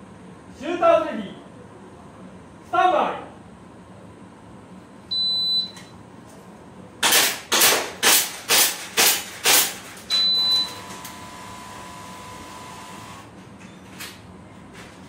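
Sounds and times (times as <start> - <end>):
airsoft pistol shots: 7.0 - 9.8.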